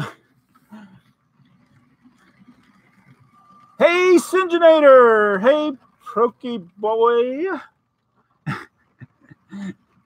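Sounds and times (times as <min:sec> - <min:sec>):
man speaking: 0:03.8 - 0:07.7.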